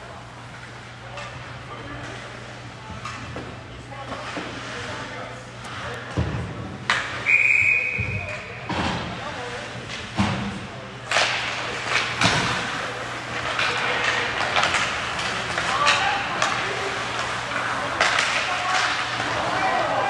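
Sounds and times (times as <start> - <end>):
voices: 0.9 - 20.0
hockey sticks and puck knocking: 9.8 - 20.0.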